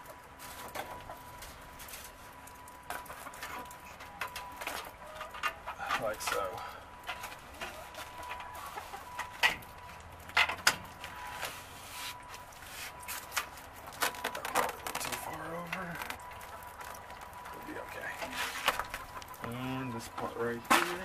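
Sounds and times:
hens clucking: 0:02.9 - 0:09.7, 0:16.2 - 0:21.0
sticky wrap crackling: 0:12.2 - 0:19.6.

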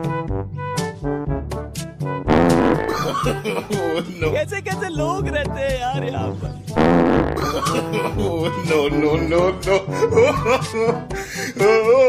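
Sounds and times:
background music: 0:00.0 - 0:12.0
fart sound effect: 0:02.3 - 0:03.3, 0:06.8 - 0:07.8
person speaking: 0:03.1 - 0:06.8, 0:07.5 - 0:10.8.

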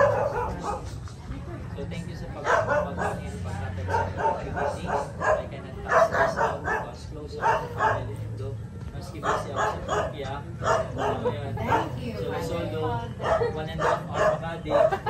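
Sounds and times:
group of people talking: 0:00.0 - 0:15.0.

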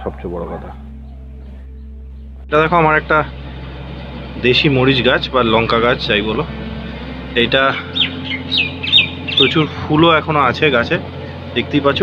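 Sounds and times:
bird chirping: 0:00.7 - 0:02.5, 0:07.7 - 0:10.0.

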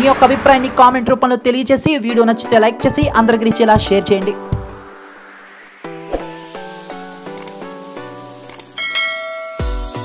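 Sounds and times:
background music: 0:00.0 - 0:10.0
bell-like notification chime: 0:08.8 - 0:10.0.

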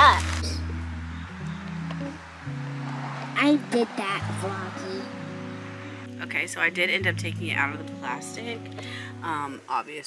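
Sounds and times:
held low notes: 0:00.0 - 0:09.5
plucked guitar: 0:00.0 - 0:09.7.

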